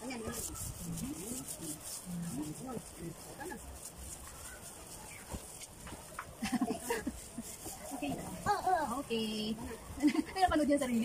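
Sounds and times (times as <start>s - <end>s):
hands rubbing plastic wrap: 0.0s - 11.0s
child vocal sound: 8.5s - 9.0s.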